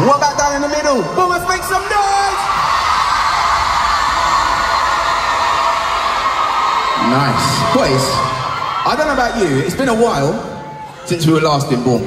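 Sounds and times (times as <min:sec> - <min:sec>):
crowd screaming and cheering: 0:00.0 - 0:12.0.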